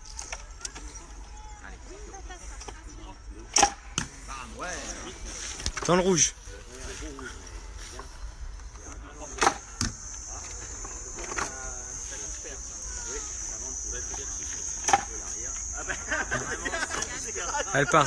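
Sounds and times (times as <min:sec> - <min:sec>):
high insect buzz: 0:04.4 - 0:18.0.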